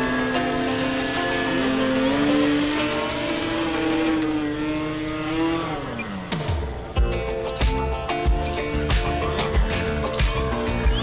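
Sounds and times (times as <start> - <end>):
model plane electric motor and propeller: 0.0 - 11.0.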